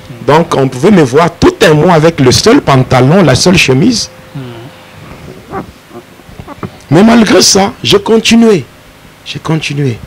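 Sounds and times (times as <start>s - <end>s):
man speaking into microphone: 0.1s - 4.6s, 6.9s - 8.7s
mouth and breath noises: 4.3s - 6.9s.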